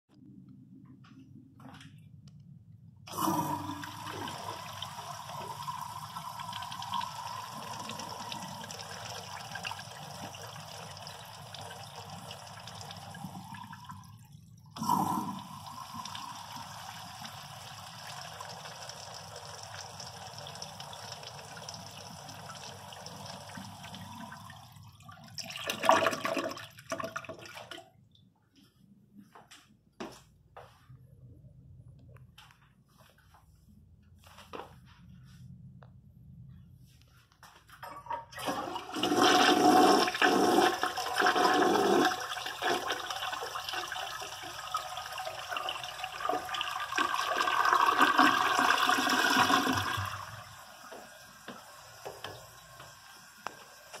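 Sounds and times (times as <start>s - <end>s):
water gurgling down drain: 3.1s - 27.8s, 38.4s - 50.6s
urinal flushing: 3.1s - 28.0s, 38.0s - 54.0s.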